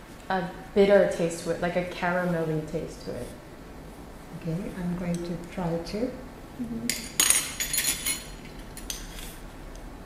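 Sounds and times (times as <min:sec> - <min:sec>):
glass and utensils clinking: 0:06.9 - 0:09.1.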